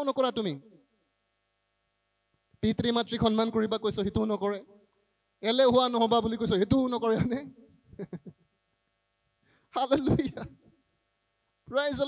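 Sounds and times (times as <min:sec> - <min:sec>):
man speaking into a microphone: 0:00.0 - 0:00.8, 0:02.6 - 0:04.8, 0:05.4 - 0:07.6, 0:09.7 - 0:10.6, 0:11.7 - 0:12.0.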